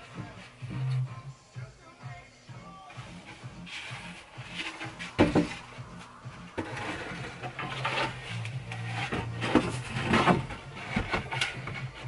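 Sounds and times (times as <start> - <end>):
wood knocking and scraping on wood: 0.0 - 1.1, 2.9 - 12.0
steady low hum: 0.1 - 12.0.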